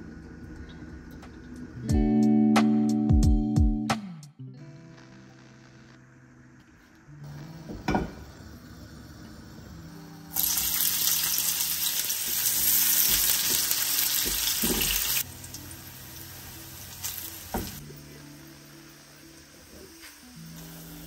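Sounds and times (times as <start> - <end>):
onions sizzling in hot oil: 7.5 - 21.0.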